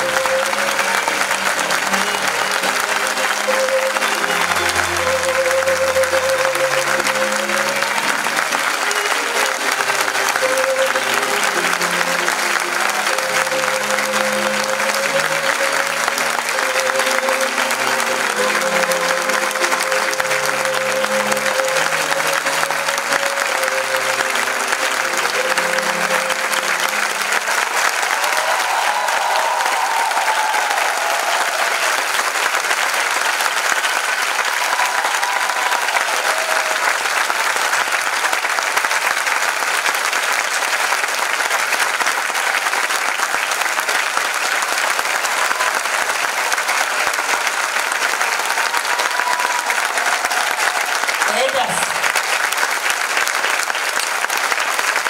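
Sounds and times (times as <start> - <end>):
music playing: 0.0 - 53.7
audience applauding: 0.0 - 55.0.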